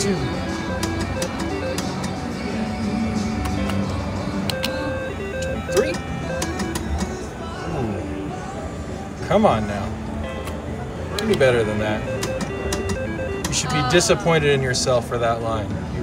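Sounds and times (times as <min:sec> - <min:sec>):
slot machine chimes: 0:00.0 - 0:03.8, 0:04.4 - 0:07.2, 0:11.2 - 0:14.7
slot machine spinning: 0:00.0 - 0:07.8, 0:11.2 - 0:14.8
background chatter: 0:00.0 - 0:16.0
music: 0:00.0 - 0:16.0
clicks: 0:00.7 - 0:02.2, 0:03.4 - 0:04.8, 0:05.4 - 0:07.2, 0:12.1 - 0:13.6.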